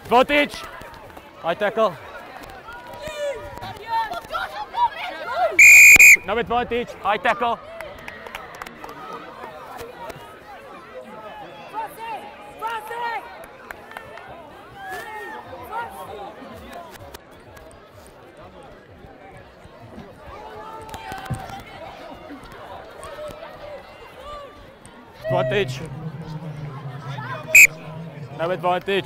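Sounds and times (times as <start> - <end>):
distant shouts and chatter: 0.0 - 16.8, 19.0 - 29.0.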